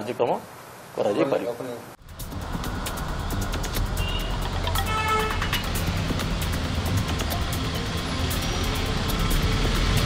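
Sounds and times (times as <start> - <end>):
background music with light beat: 2.0 - 10.0
motorcycles and scooters passing: 2.0 - 10.0.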